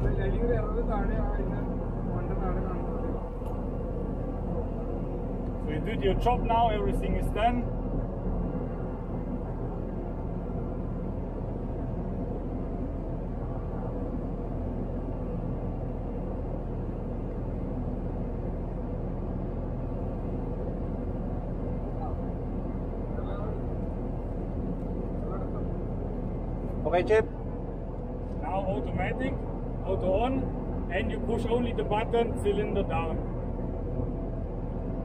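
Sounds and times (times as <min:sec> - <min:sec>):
crane engine drone: 0:00.0 - 0:35.0.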